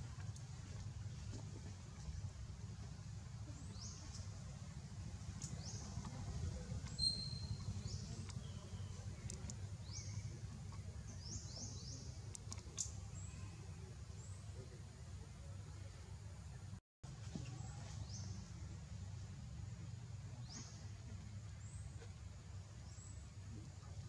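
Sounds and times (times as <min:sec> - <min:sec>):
small birds chirping: 0:03.2 - 0:15.9.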